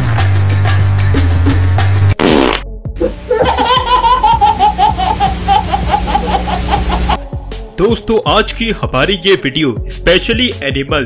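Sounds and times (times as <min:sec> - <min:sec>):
background music with a beat: 0:00.0 - 0:04.5, 0:07.2 - 0:11.0
baby laughing: 0:03.0 - 0:07.2.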